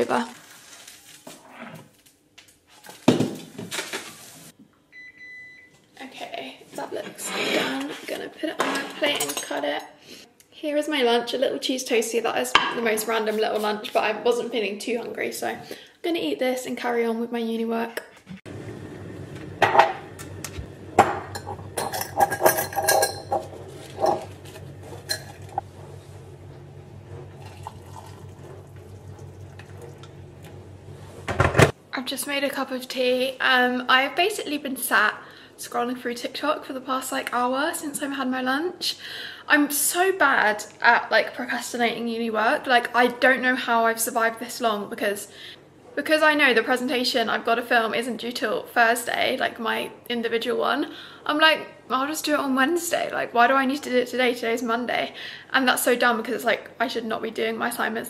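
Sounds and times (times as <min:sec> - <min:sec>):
water pouring into a mug: 0:27.3 - 0:30.1.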